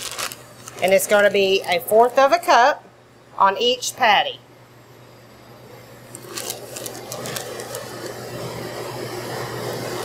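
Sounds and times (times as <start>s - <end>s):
plastic zip bag crinkling: 0.0s - 2.2s, 6.1s - 8.2s
kitchen equipment hum: 0.0s - 10.0s.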